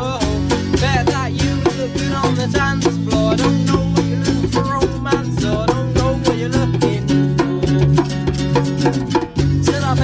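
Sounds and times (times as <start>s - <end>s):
acoustic guitar strummed: 0.0s - 10.0s
hand drum: 0.0s - 10.0s.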